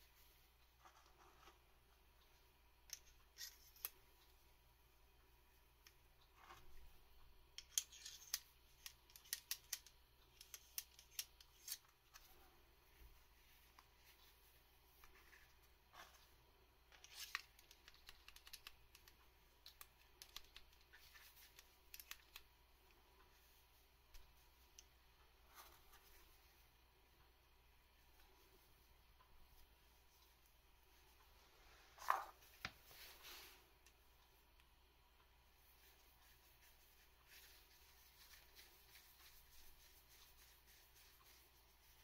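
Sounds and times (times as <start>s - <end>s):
light clicks of small parts: 7.5s - 12.4s, 16.9s - 23.4s
plastic and metal parts clicking: 7.6s - 11.9s.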